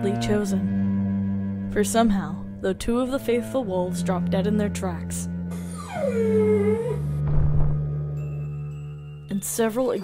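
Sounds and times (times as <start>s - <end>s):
background music: 0.0s - 10.0s
canine whimper: 5.6s - 7.1s
low thud: 7.2s - 7.9s.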